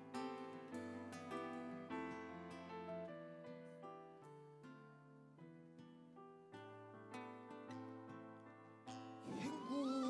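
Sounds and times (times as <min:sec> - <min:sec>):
picked and keyboard notes: 0:06.8 - 0:10.0.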